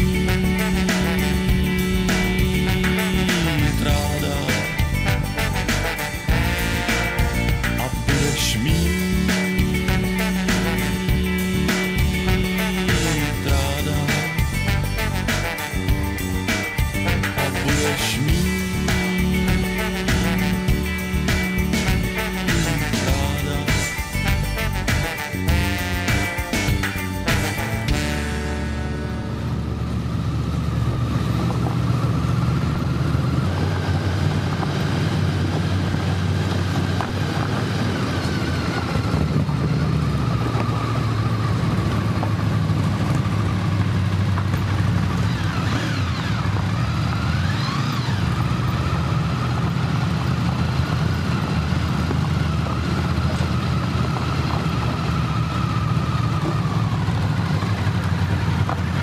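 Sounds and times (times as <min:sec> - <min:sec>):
motorcycle engine running: 0:00.0 - 0:59.0
road noise: 0:00.0 - 0:59.0
wind noise: 0:30.8 - 0:41.8.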